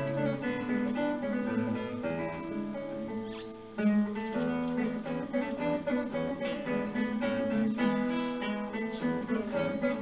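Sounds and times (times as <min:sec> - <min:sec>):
classical guitar fingerstyle: 0:00.0 - 0:10.0
fingers squeaking on strings: 0:03.1 - 0:05.7.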